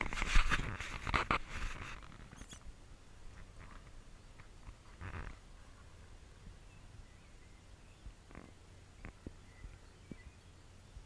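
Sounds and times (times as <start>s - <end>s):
faint outdoor background: 0.0s - 11.0s.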